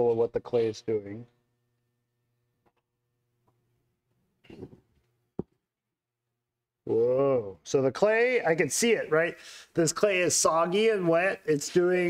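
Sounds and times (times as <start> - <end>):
faint steady hum: 0.0 - 5.6.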